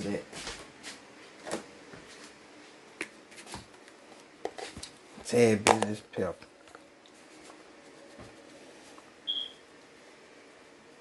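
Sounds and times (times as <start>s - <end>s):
high-pitched electronic beep: 9.3s - 9.6s.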